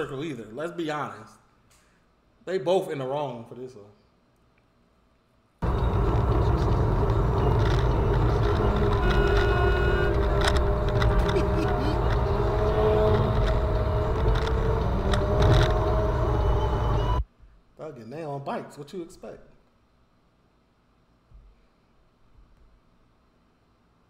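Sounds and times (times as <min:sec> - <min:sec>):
car engine and tyre noise: 0:05.6 - 0:17.2.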